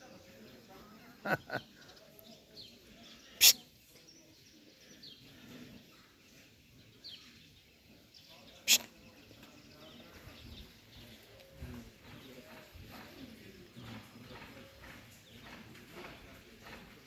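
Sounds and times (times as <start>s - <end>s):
faint bird chirps: 1.2s - 12.6s.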